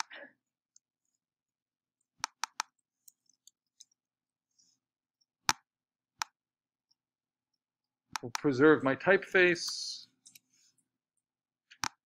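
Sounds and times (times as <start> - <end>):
keyboard and mouse clicks: 0.0 - 0.2, 2.0 - 4.0, 8.1 - 8.5, 11.7 - 12.0.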